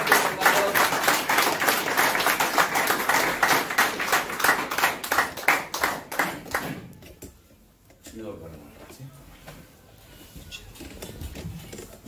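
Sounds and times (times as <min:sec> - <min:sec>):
hands clapping: 0:00.0 - 0:07.0.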